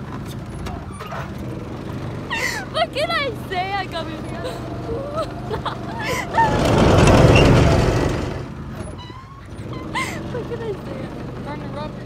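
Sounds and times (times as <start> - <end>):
go-kart engine running: 0.0 - 12.0
people's voices: 2.4 - 6.8, 10.0 - 12.0
loud rush of noise: 6.1 - 8.6.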